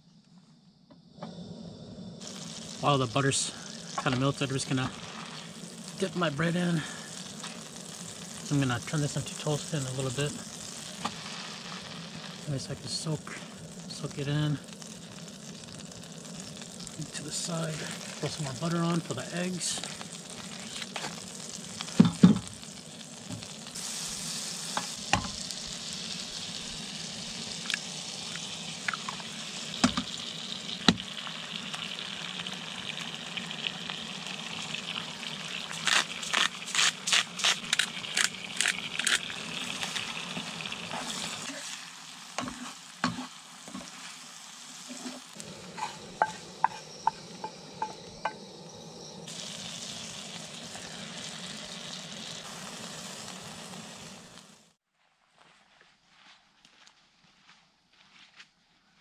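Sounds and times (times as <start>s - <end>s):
bread toasting in pan: 2.2s - 48.0s, 49.3s - 54.7s
butter and eggs sizzling in pan: 2.2s - 54.8s
seasoning shaker shakes: 35.7s - 47.1s.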